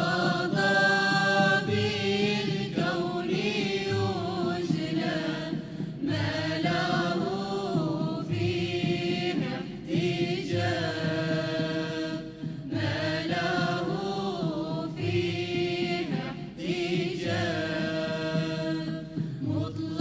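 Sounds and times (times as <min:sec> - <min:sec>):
voices singing devotional song: 0:00.0 - 0:20.0.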